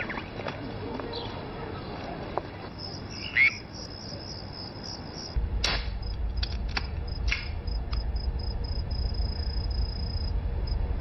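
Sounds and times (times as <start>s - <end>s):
low rumble: 5.4s - 11.0s.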